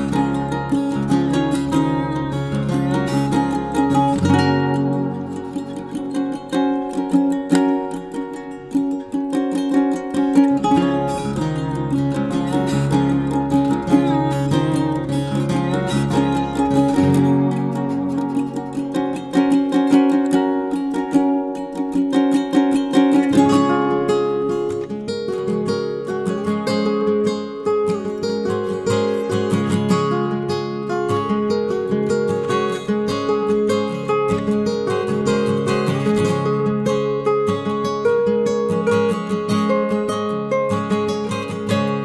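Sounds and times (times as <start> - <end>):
plucked string instrumental music: 0.0 - 42.0.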